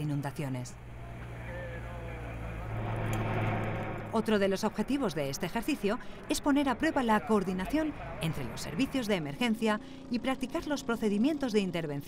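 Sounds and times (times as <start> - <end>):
outboard motor running: 0.8 - 12.0.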